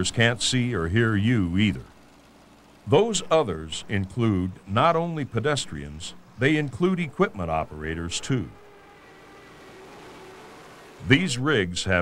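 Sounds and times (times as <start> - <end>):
heavy equipment running: 0.0 - 12.0.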